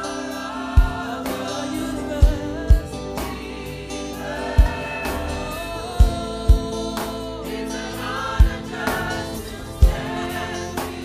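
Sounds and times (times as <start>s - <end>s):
choir singing: 0.0s - 11.0s
deep drum beats: 9.8s - 11.0s.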